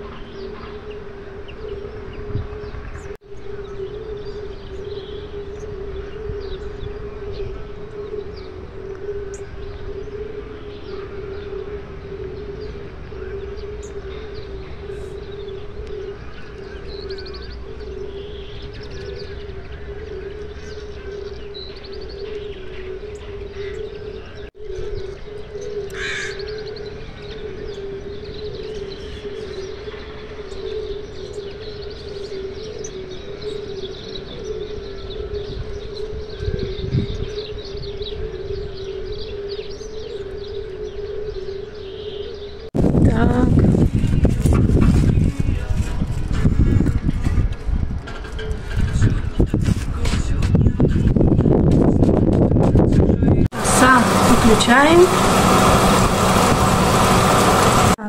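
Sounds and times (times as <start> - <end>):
birds chirping: 0.0 - 51.2, 53.1 - 58.0
loud noise: 53.5 - 58.0
steady low hum: 53.5 - 58.0.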